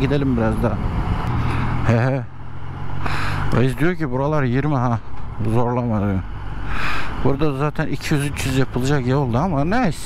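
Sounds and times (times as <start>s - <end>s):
wind and road noise: 0.0s - 10.0s.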